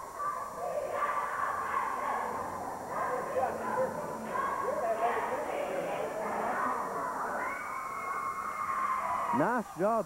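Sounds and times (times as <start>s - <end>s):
cheerleaders chanting and shouting: 0.0s - 10.0s.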